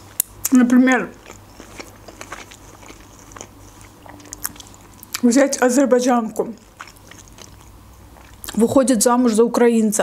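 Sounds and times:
mouth chewing food: 0.0 - 8.7
person talking: 0.5 - 1.2, 5.2 - 6.6, 8.5 - 10.0.

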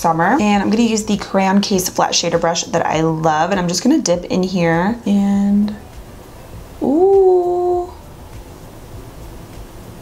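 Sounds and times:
rising vocal call: 6.8 - 8.0.

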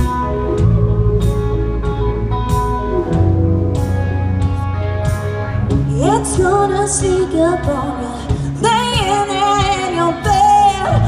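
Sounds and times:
country rock band playing: 0.0 - 11.0.

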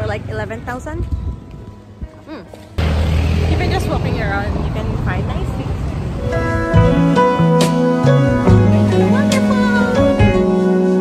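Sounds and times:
quiet street ambience: 0.0 - 8.2
person humming: 2.2 - 2.6
music with heavy bass: 6.2 - 11.0.

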